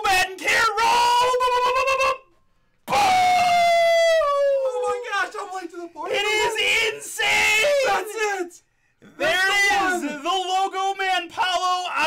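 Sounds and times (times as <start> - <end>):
man screaming in excitement: 2.9 - 5.2.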